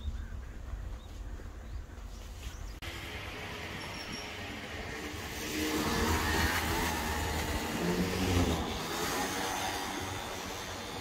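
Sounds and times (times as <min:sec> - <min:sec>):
go-kart engines running: 0:02.8 - 0:11.0.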